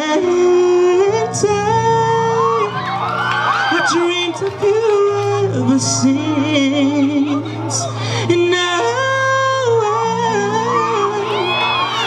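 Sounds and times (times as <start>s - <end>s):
young man singing into microphone: 0.0s - 2.9s, 3.6s - 12.0s.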